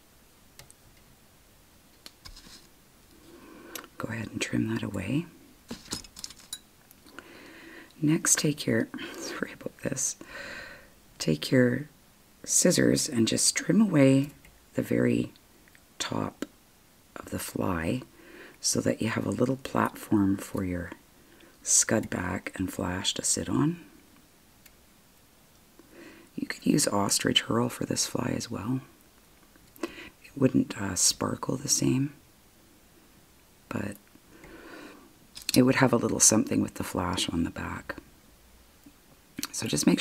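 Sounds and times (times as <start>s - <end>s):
soft rustle: 1.9s - 7.1s.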